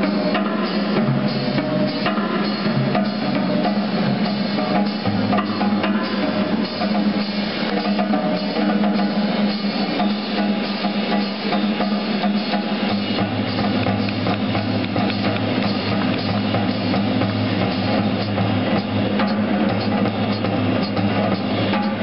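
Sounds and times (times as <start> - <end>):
drum kit: 0.0 - 22.0
jazz big band playing: 0.0 - 22.0.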